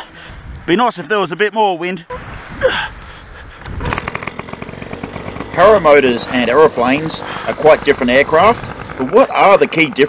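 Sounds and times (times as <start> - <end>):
paramotor engine running: 3.7 - 10.0.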